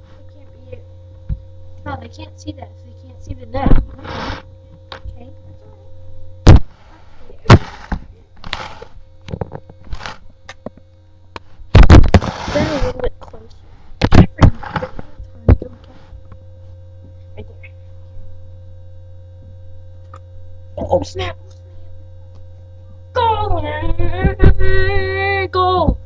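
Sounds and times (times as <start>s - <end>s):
low electrical hum: 0.0s - 26.0s.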